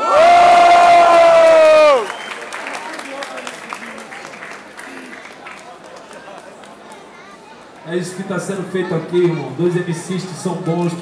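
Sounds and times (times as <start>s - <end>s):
loud held shout: 0.0s - 2.1s
crowd cheering and clapping: 0.0s - 7.1s.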